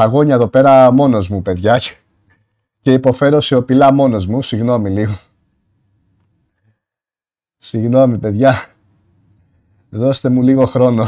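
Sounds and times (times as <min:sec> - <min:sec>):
man speaking: 0:00.0 - 0:02.1, 0:02.8 - 0:05.4, 0:07.6 - 0:08.8, 0:09.9 - 0:11.0
faint click: 0:05.4 - 0:06.7.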